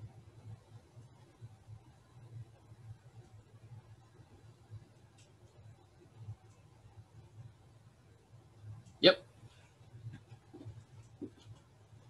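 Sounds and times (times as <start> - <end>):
steady low hum: 0.0 - 12.0
soft ticks: 5.1 - 5.7.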